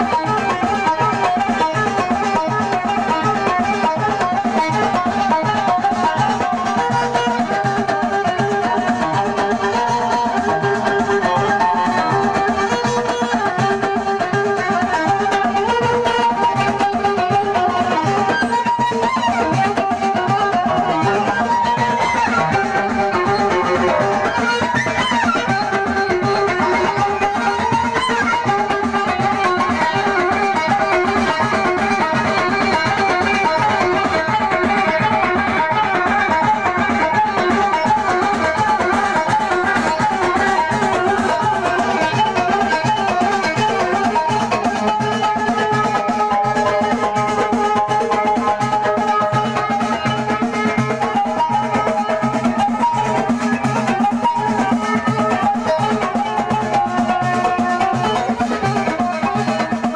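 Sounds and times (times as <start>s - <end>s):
hand drum rhythm: 0.0s - 59.9s
violin melody: 0.0s - 59.9s.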